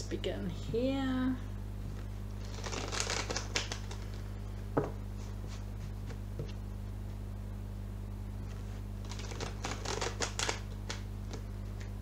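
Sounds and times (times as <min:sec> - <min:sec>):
cards being shuffled by hand: 0:01.9 - 0:04.2, 0:08.5 - 0:11.9.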